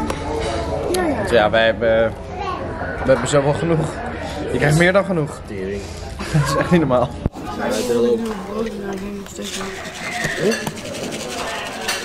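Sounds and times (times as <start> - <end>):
indistinct voices: 7.3 - 12.0.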